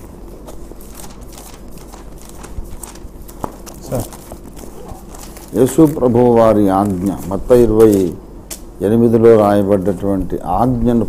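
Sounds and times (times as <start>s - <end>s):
pages rustling: 0.3s - 8.2s.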